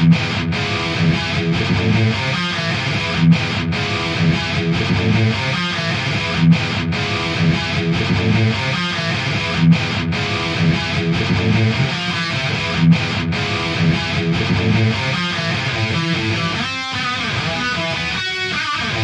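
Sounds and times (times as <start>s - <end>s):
distorted electric guitar riff: 0.0s - 19.0s.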